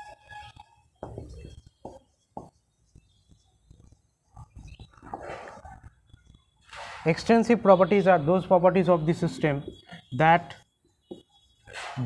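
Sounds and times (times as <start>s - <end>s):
marker scratching on whiteboard: 0.1s - 7.0s.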